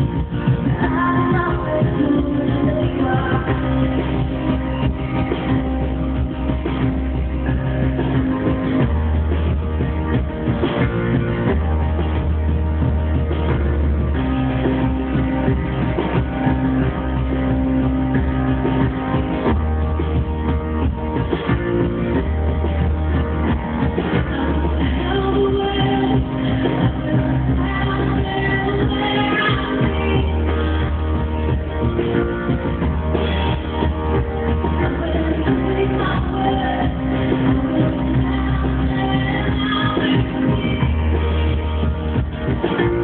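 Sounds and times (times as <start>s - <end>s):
drums: 0.0s - 43.0s
keyboard: 0.0s - 43.0s
live band playing: 0.0s - 43.0s.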